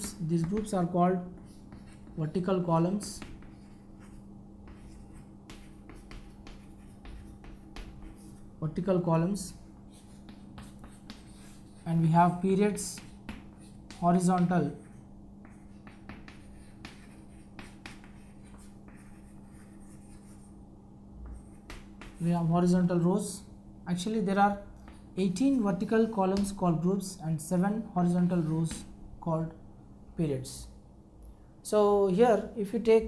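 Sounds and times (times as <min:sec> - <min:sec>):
chalk scratching on chalkboard: 0:00.0 - 0:20.6, 0:21.2 - 0:22.5
steady low hum: 0:00.0 - 0:33.0.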